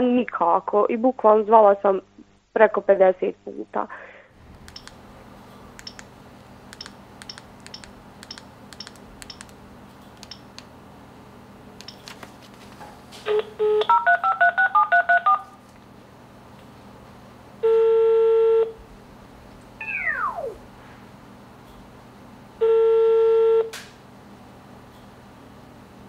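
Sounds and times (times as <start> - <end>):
phone key beeps: 4.7 - 4.9, 5.8 - 6.0, 6.8 - 9.5, 10.2 - 10.5
phone ringing tone: 13.3 - 15.5, 17.6 - 18.8, 22.6 - 23.7
short falling whine: 19.8 - 20.8.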